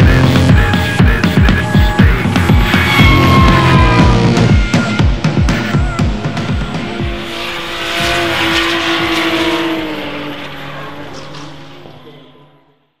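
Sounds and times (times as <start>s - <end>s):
car engine at high revs: 0.0s - 13.0s
tyres squealing: 0.5s - 6.8s.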